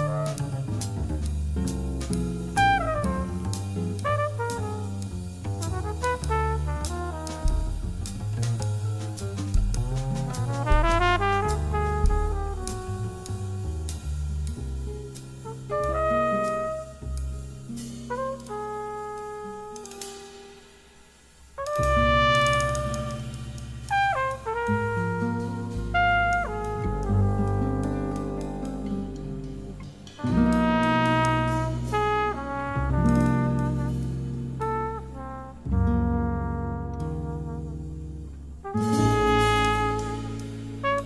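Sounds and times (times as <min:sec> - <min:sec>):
brass horn slow melody: 0:00.0 - 0:00.9, 0:02.6 - 0:08.8, 0:09.8 - 0:14.2, 0:15.4 - 0:20.9, 0:21.6 - 0:41.0
low sustained bass notes: 0:00.0 - 0:19.6, 0:21.6 - 0:41.0.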